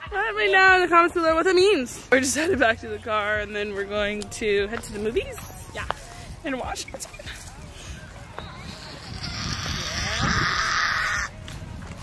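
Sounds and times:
person screeching: 9.0 - 11.3.

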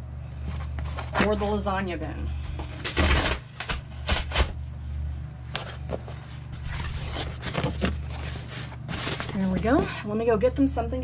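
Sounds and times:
steady low hum: 0.0 - 11.0
cardboard rustling: 0.4 - 10.0.

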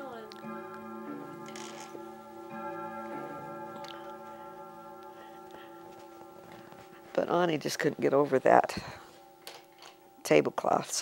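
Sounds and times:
grandfather clock chiming: 0.0 - 11.0.

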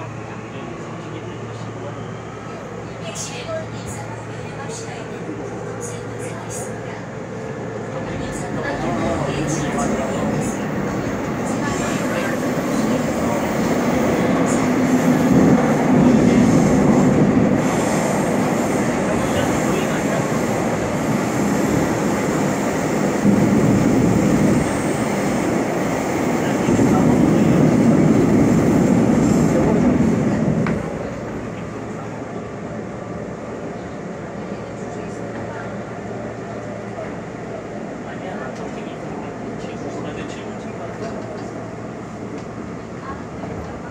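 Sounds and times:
subway train wheels rumbling: 0.0 - 43.9.

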